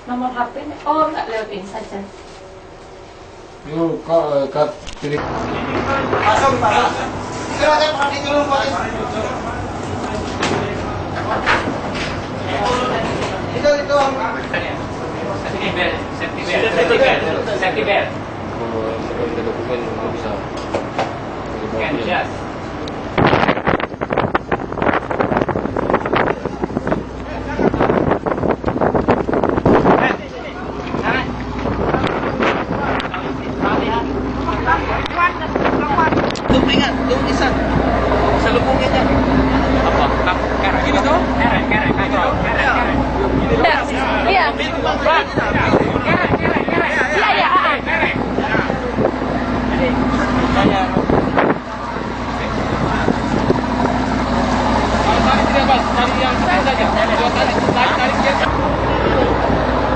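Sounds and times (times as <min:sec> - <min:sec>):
ship machinery humming: 0:00.0 - 0:59.9
people talking: 0:00.1 - 0:02.2, 0:03.6 - 0:20.6, 0:26.0 - 0:28.2, 0:29.8 - 0:59.9
low rumble: 0:21.2 - 0:59.9
wind buffeting microphone: 0:22.5 - 0:59.9.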